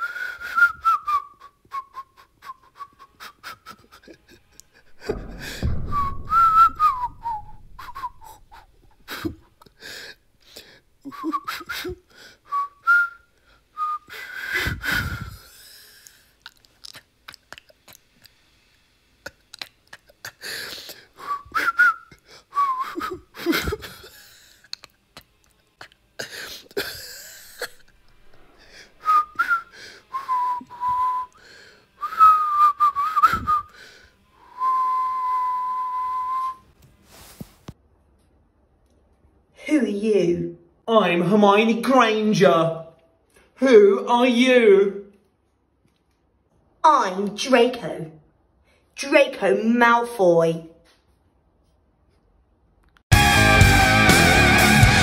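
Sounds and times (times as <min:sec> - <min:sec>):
person whistling: 0:00.0 - 0:03.8, 0:05.0 - 0:09.0, 0:11.1 - 0:11.9, 0:12.5 - 0:15.4, 0:21.2 - 0:23.2, 0:29.0 - 0:31.4, 0:32.0 - 0:33.8, 0:34.4 - 0:36.7
breathy burst: 0:04.3 - 0:11.0, 0:20.3 - 0:21.5, 0:27.4 - 0:32.1, 0:33.6 - 0:34.7.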